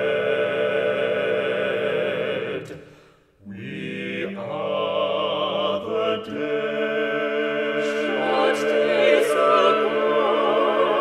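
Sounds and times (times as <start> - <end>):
voices holding a sustained chord: 0.0 - 2.8, 3.5 - 11.0.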